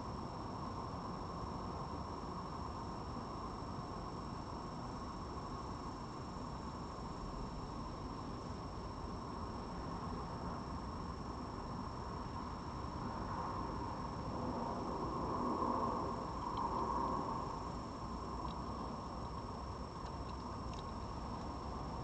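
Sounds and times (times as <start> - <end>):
steady background hiss: 0.0 - 22.0
fox crunching dry food: 18.4 - 21.6.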